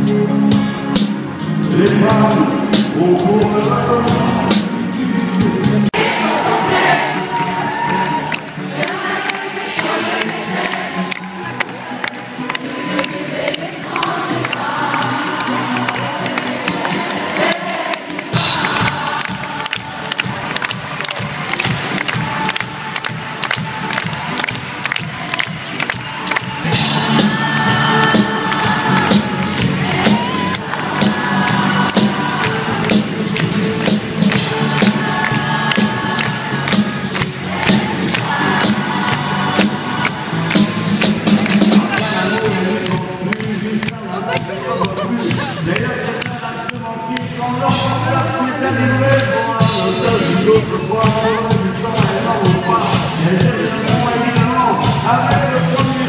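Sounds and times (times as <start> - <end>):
live band music: 0.0 - 56.0
crowd cheering and clapping: 4.1 - 48.2.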